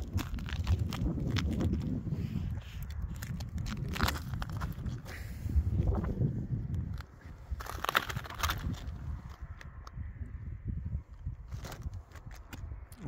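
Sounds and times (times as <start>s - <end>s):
footsteps crunching on lava rock: 0.0s - 9.8s.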